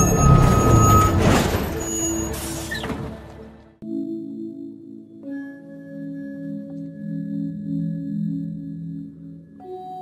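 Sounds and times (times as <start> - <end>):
diesel engine rumbling: 0.0 - 3.7.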